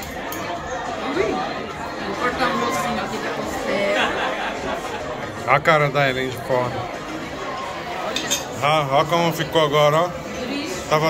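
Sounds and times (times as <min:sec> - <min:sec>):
people chattering in restaurant: 0:00.0 - 0:11.0.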